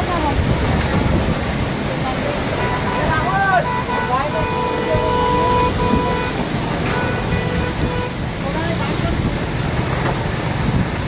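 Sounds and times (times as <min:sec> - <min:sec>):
heavy rain: 0:00.0 - 0:11.0
storm wind: 0:00.0 - 0:11.0
vehicle horn: 0:02.5 - 0:08.2.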